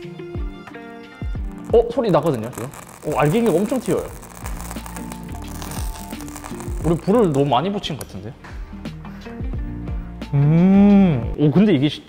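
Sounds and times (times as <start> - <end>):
background music: 0.0 - 12.0
capsules crackling and popping: 1.4 - 8.3.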